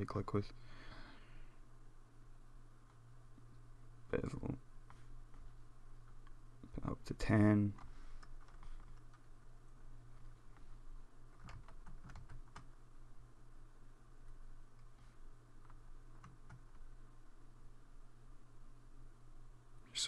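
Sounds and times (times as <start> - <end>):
low steady hum: 0.0 - 20.0
computer keys clicking: 7.8 - 9.2, 11.3 - 12.7, 15.6 - 16.8.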